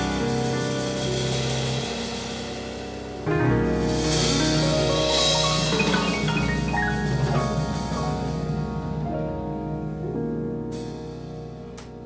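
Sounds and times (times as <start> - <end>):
latin jazz combo playing: 0.0 - 10.0.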